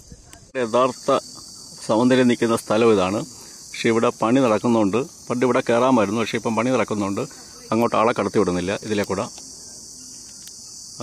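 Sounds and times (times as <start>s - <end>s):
person speaking: 0.0s - 9.9s
high-pitched insects shrilling: 0.0s - 11.0s.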